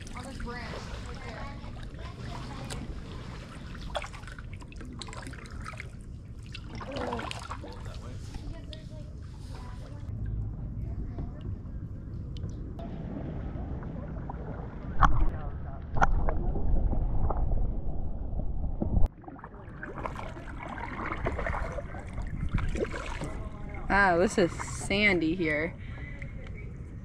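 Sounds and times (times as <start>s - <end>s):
kayak paddling water sounds: 0.0s - 10.2s, 19.1s - 26.7s
muffled underwater rumble: 0.0s - 27.0s.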